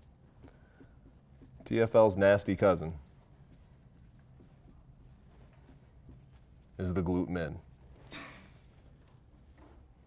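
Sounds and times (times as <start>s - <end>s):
marker writing on whiteboard: 0.0s - 9.7s.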